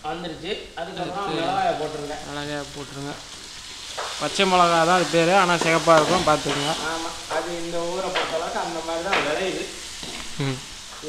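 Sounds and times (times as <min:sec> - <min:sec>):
vegetables sizzling in a wok: 0:00.0 - 0:11.0
person talking: 0:01.0 - 0:03.2, 0:04.2 - 0:09.4.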